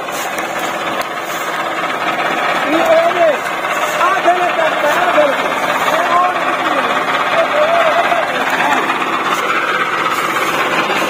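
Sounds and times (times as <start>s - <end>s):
tractor diesel engine running: 0.0s - 11.0s.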